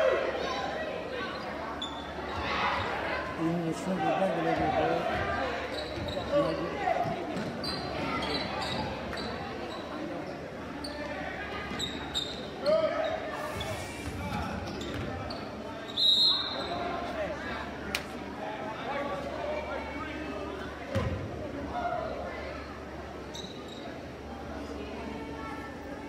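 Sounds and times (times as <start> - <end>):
crowd talking and shouting: 0.0 - 26.0
sneaker squeaks: 1.2 - 3.0, 5.1 - 16.9, 22.6 - 24.2
referee's whistle: 15.9 - 16.8.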